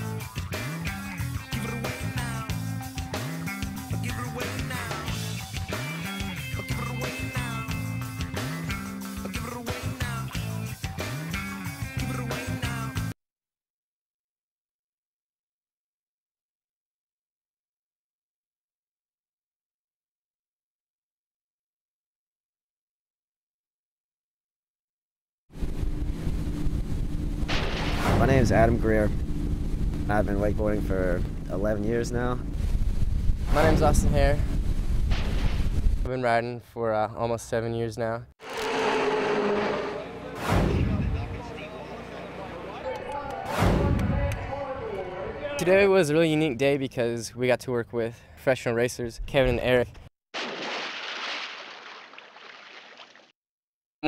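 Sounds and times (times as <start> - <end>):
boat engine running: 25.5 - 33.0, 38.4 - 43.4
wind on microphone: 32.5 - 36.1
rushing water: 50.4 - 53.3.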